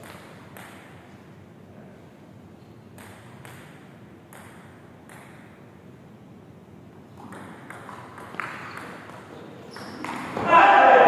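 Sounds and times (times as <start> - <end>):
steady background noise: 0.0 - 11.0
table tennis ball clicks: 2.9 - 5.6.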